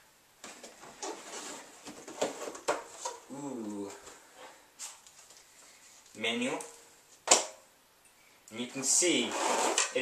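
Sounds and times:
cardboard rustling: 0.4 - 6.1
cardboard scraping: 0.5 - 3.3, 9.2 - 10.0.

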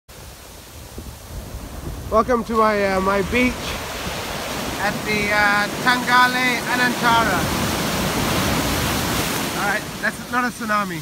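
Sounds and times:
ocean surf on a beach: 0.1 - 11.0
wind rumbling on microphone: 0.1 - 11.0.

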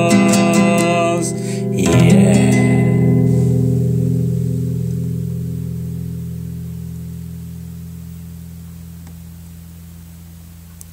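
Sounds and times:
acoustic guitar chord ringing: 0.0 - 10.8.

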